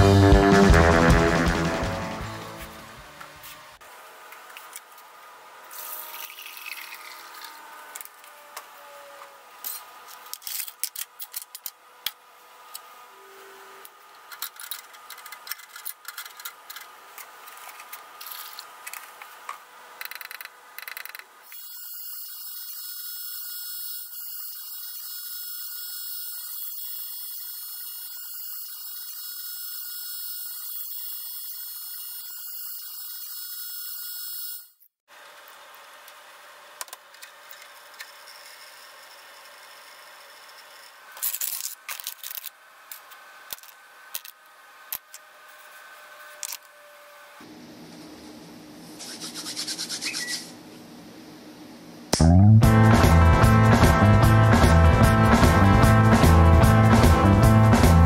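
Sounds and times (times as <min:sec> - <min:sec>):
ultrasonic cleaner hiss and buzz: 0:00.0 - 0:08.2.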